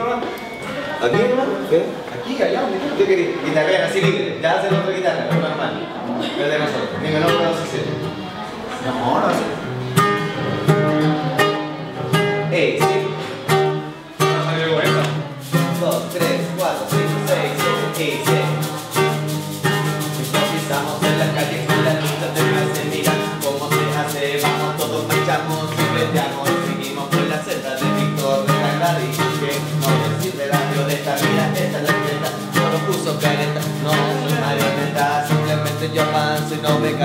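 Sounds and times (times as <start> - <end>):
acoustic guitar strumming: 0.0 - 37.0.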